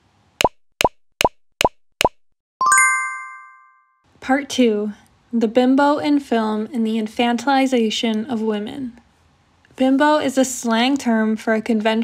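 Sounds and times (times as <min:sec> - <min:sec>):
bright chime: 0:02.6 - 0:04.0.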